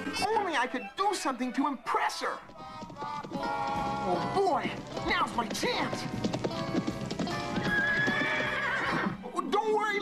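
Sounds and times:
background music: 0.0 - 10.0
hoofbeats clip-clopping: 1.9 - 9.2
horse whinnying: 5.1 - 9.3.

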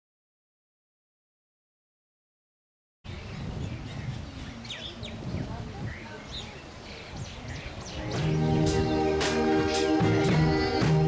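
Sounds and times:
birds chirping: 3.1 - 11.0.

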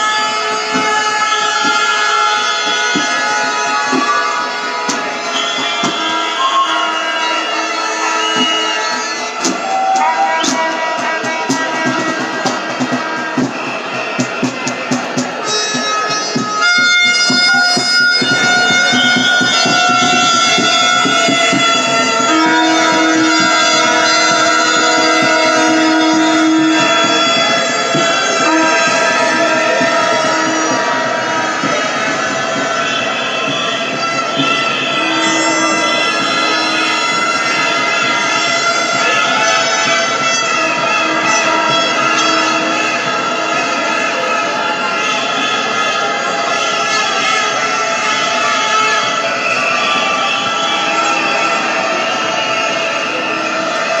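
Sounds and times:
air horns blaring: 0.0 - 54.0
whistles blowing: 5.1 - 10.7, 32.4 - 37.8, 48.0 - 54.0.

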